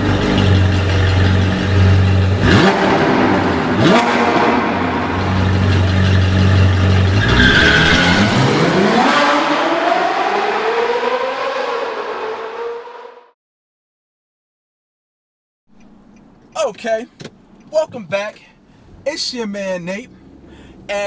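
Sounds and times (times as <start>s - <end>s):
sports car engine idling: 0.0s - 7.2s, 15.7s - 21.0s
engine revving: 0.0s - 13.4s
rising engine whine: 0.0s - 13.4s.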